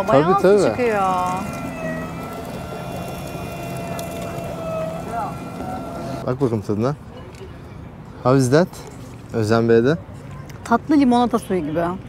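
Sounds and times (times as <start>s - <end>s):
juice press machine humming: 0.0s - 6.2s.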